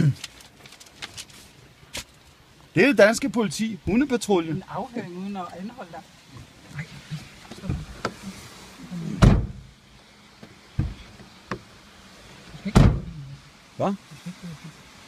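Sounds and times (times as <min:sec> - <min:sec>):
thumps and knocks inside a car: 0:07.5 - 0:08.2, 0:09.2 - 0:09.7, 0:10.4 - 0:11.7, 0:12.7 - 0:13.2.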